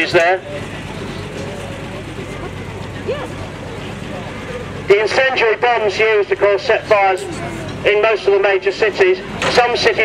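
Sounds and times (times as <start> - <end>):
faint distant voices: 0.0 - 10.0
vehicle engine running: 0.0 - 10.0.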